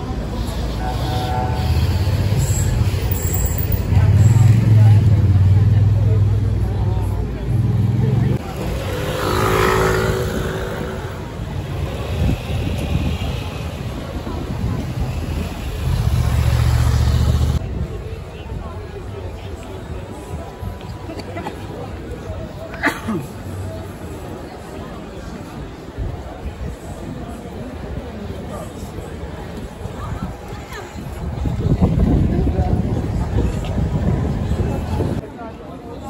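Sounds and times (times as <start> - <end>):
passers-by talking: 0.0 - 36.0.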